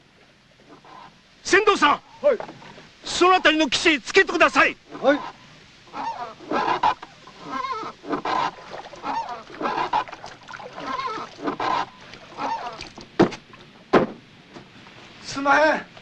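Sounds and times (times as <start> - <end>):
honking animal calls: 4.9 - 12.9
sharp knock: 13.2 - 14.2.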